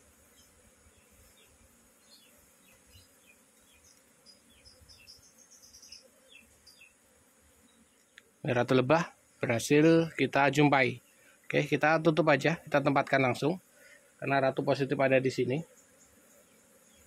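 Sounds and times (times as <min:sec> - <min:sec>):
bees buzzing: 0:00.0 - 0:17.0.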